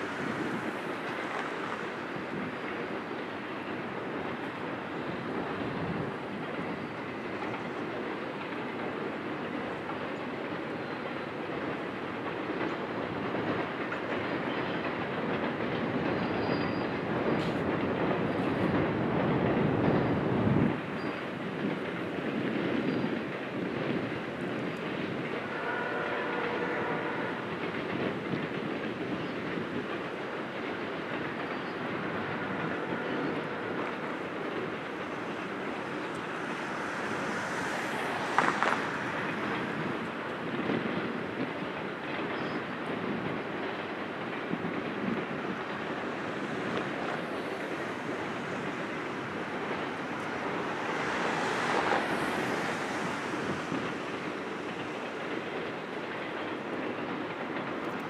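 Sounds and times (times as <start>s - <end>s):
freight train rumbling over bridge: 0.0s - 58.0s
wheels clacking on rail joints: 0.0s - 58.0s.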